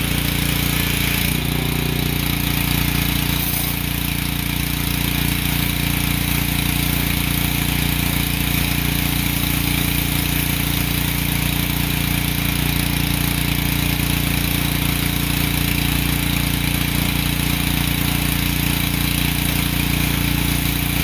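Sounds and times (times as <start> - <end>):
water spray hissing: 0.0 - 12.2, 19.0 - 21.0
pressure washer motor humming: 0.0 - 21.0.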